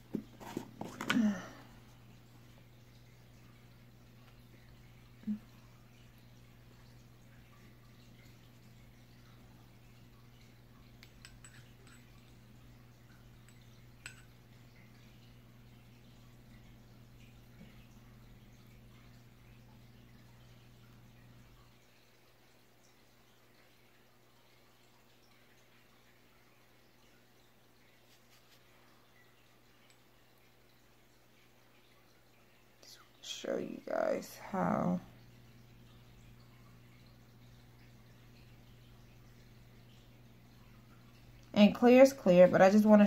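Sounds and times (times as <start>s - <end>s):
low steady hum: 0.0s - 43.0s.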